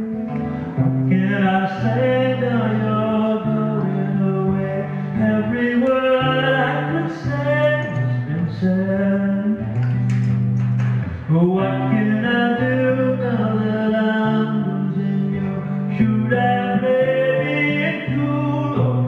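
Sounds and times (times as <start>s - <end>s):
guitar accompaniment: 0.0s - 19.0s
held melody line: 0.0s - 19.0s.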